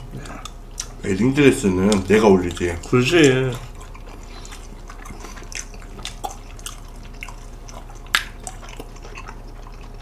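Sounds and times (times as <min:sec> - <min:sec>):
slurping and chewing noodles: 0:01.7 - 0:10.0.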